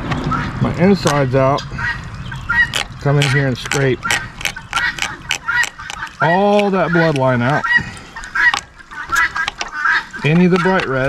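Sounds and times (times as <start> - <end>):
fillet knife scraping fish ribs: 2.6 - 10.9
knife clicking against ribs: 2.7 - 7.2.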